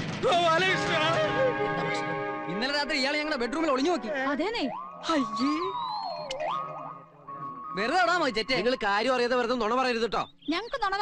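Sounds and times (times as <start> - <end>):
comic sliding tone: 3.5 - 8.8.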